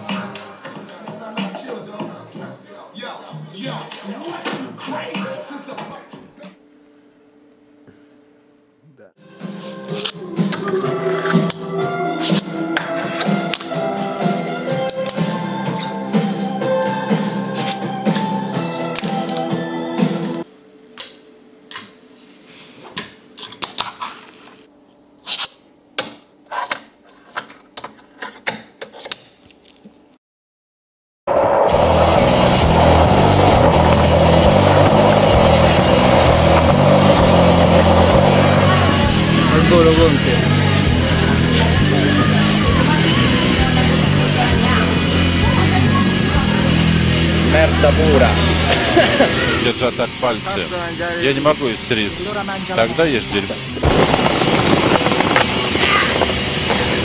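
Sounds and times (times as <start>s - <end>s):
skateboard wheels rolling on asphalt: 31.3s - 39.7s, 53.8s - 57.0s.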